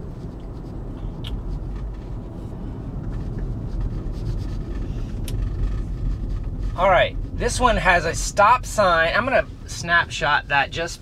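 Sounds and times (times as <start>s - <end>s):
road and tyre noise in car cabin: 0.0s - 11.0s.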